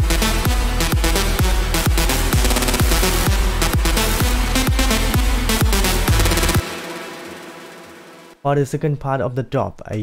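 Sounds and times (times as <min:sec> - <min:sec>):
electronic dance music: 0:00.0 - 0:08.4.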